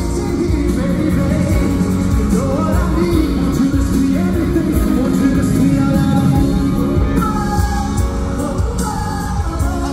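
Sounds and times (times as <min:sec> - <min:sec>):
live pop concert music: 0:00.0 - 0:09.9.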